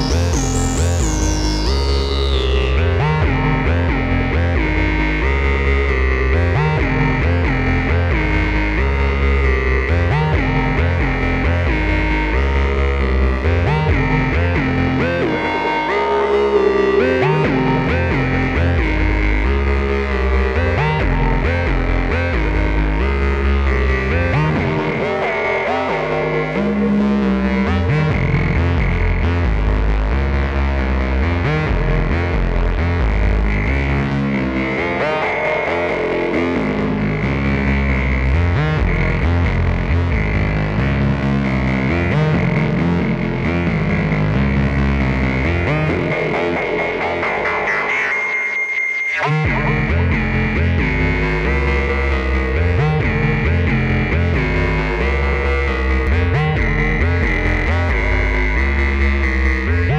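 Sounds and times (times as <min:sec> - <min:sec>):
bass synth line with echo: 0:00.0 - 0:48.4, 0:49.0 - 0:59.9.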